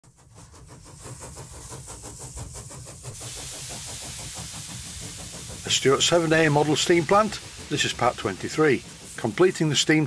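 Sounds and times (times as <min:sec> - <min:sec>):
steam engine exhaust beat: 0:00.0 - 0:10.0
steam hissing: 0:00.1 - 0:10.0.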